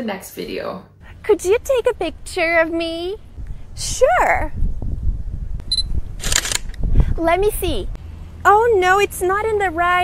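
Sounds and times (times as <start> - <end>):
camera beep: 5.7 - 6.6
camera shutter firing: 6.2 - 6.8.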